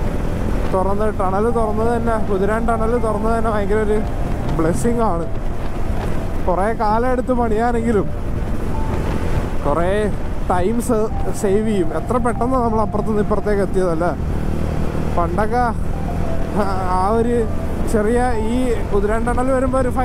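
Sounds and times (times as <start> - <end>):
wind noise: 0.0 - 12.5
motorcycle engine rumble: 0.0 - 20.0
man speaking: 0.8 - 5.4, 9.6 - 14.2, 16.5 - 20.0.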